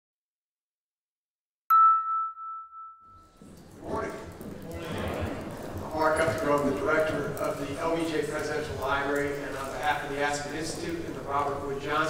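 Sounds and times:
bell-like chime: 1.7s - 3.4s
large hall room noise: 3.2s - 12.0s.

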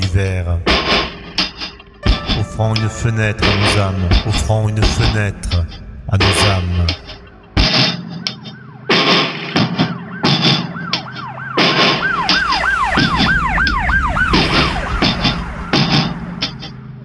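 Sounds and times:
music with sharp beats: 0.0s - 17.0s
emergency siren yelping: 7.0s - 17.0s.

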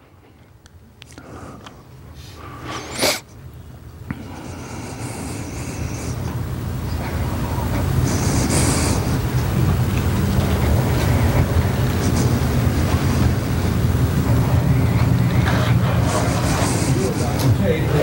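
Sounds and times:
low rumble: 9.1s - 17.9s
man narrating: 16.9s - 18.0s.

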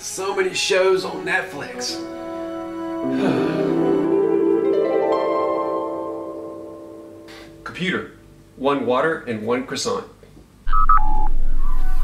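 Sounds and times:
shimmering rising tone: 3.0s - 7.6s
short electronic beeps: 10.7s - 11.6s.

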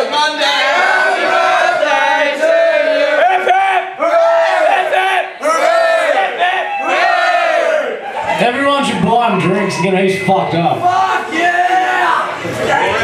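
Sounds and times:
crowd singing together: 0.0s - 8.4s.

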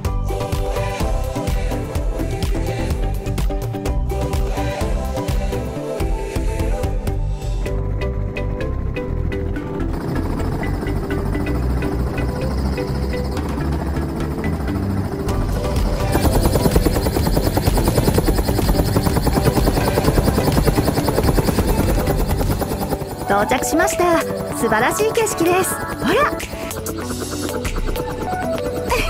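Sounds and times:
music: 0.0s - 29.0s
helicopter rotor chop: 4.2s - 29.0s.

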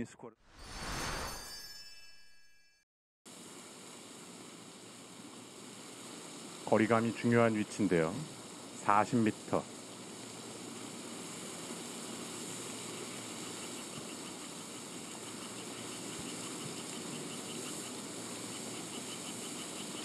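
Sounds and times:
steady outdoor hiss: 3.3s - 20.0s
faint high insect chirps: 12.0s - 20.0s.

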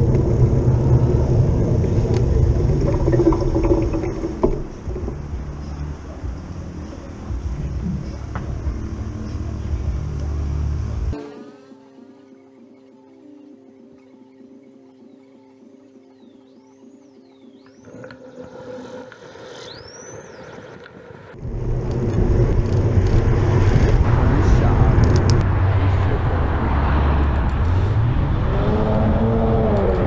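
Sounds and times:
wind rumble on microphone: 0.0s - 11.1s, 17.9s - 30.0s
traffic noise: 0.0s - 11.2s, 17.9s - 30.0s
soft background music: 2.5s - 18.7s.

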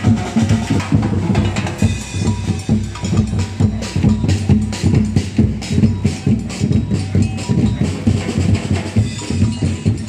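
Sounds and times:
metal drums beaten with mallets: 0.0s - 10.0s.

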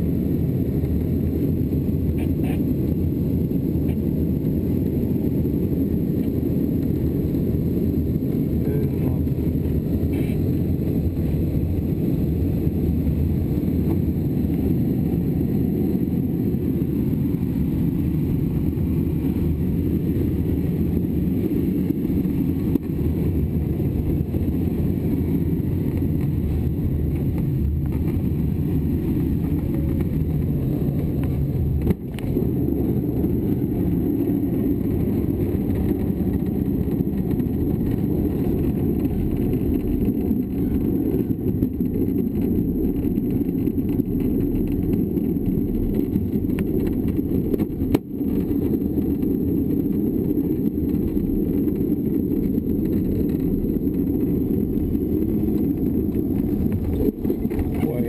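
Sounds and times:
glider wheel rumbling on runway: 0.0s - 58.0s.

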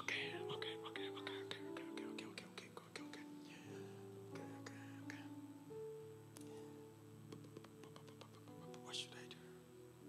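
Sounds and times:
soft held chords: 0.0s - 10.0s.

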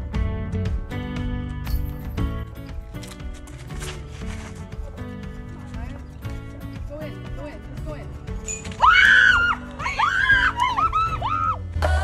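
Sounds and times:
background music: 0.0s - 12.0s
woman screaming in excitement: 8.8s - 11.6s.

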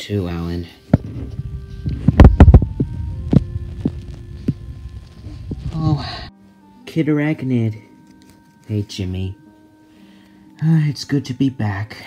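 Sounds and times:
faint steady hum: 0.6s - 6.7s.

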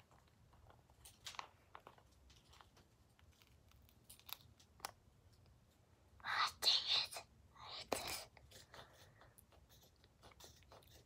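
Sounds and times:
girl whispering: 6.2s - 8.4s.

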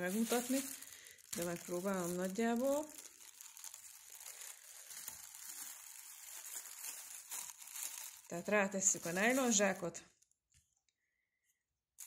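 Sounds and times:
plastic bag crinkling: 0.0s - 10.4s.

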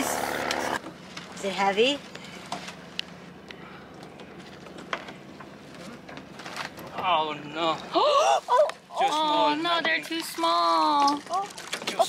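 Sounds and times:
outboard motor idling: 0.0s - 0.8s.

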